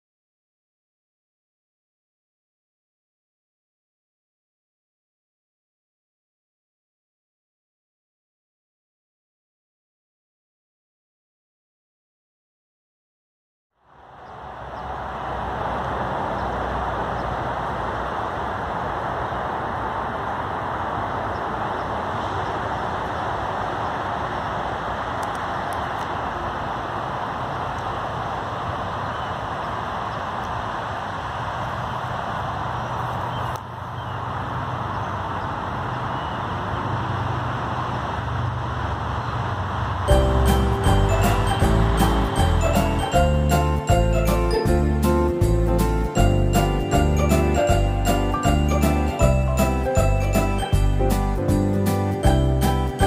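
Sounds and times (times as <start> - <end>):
distant road traffic: 13.8 - 53.0.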